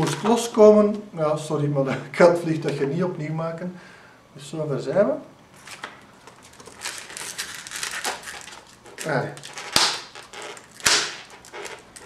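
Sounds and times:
fingers rubbing latex balloons: 8.0s - 12.0s.

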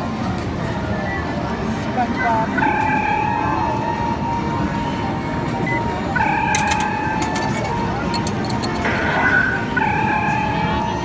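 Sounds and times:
low rumble of arcade machines: 0.0s - 11.0s.

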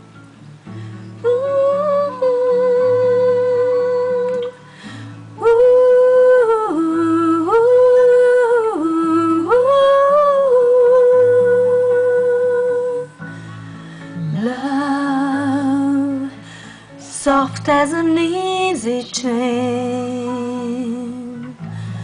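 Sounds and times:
plucked acoustic guitar: 0.0s - 22.0s
woman humming a melody: 1.2s - 4.6s.

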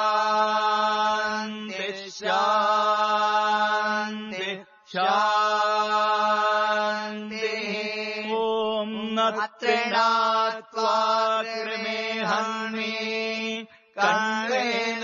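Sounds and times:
mantra chanting: 0.0s - 15.0s.

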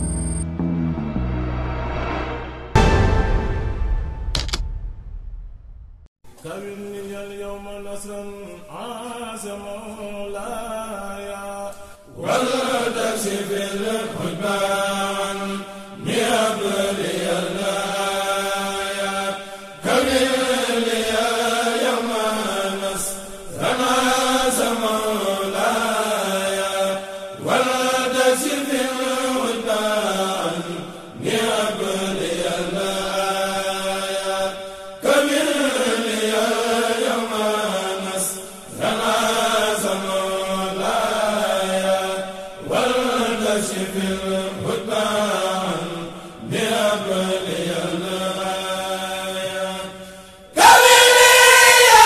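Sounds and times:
religious chant in repeated phrases: 6.3s - 52.0s.

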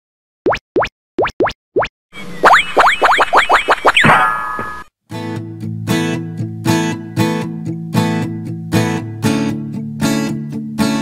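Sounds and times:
cartoon bloop pops: 0.4s - 4.8s.

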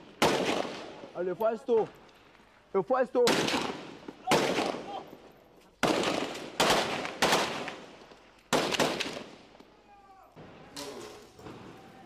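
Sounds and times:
gunshots with echoing tail: 0.0s - 1.0s, 3.2s - 4.9s, 5.8s - 7.8s.

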